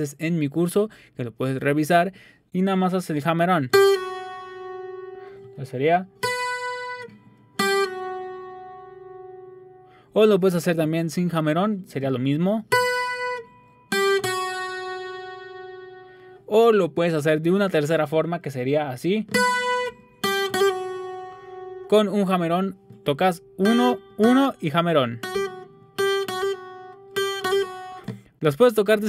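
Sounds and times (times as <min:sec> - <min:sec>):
acoustic guitar picked notes: 0:03.7 - 0:18.2, 0:19.2 - 0:28.4.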